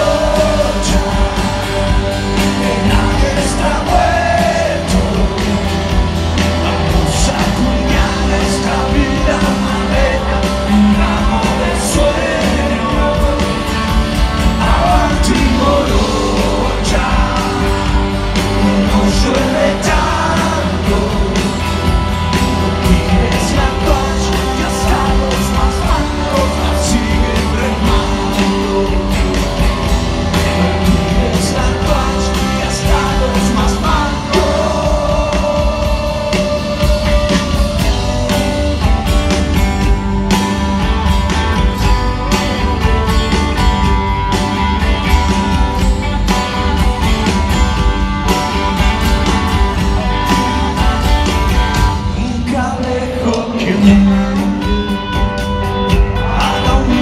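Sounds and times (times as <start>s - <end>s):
bass guitar: 0.0s - 57.0s
electric guitar: 0.0s - 57.0s
live rock band playing: 0.0s - 57.0s
steady drum beat: 0.0s - 57.0s.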